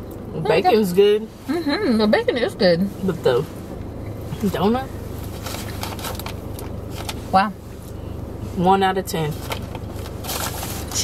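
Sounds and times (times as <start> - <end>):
steady low hum: 0.0 - 11.0
paper bag crinkling: 9.4 - 11.0.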